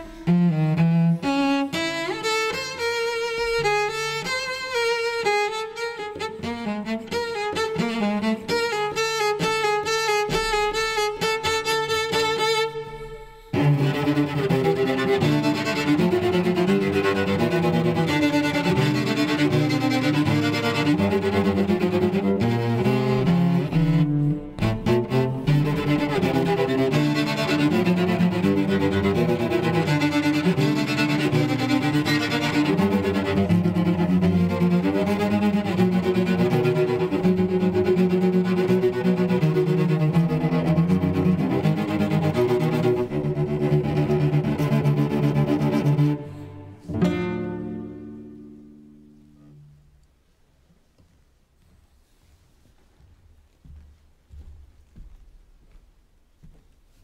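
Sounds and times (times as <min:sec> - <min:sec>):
bowed cello: 0:00.0 - 0:50.1.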